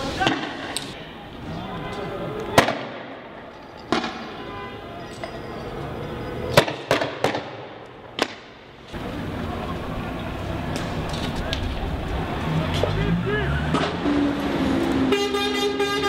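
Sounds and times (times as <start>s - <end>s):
voices: 0.0s - 2.9s, 9.0s - 14.1s.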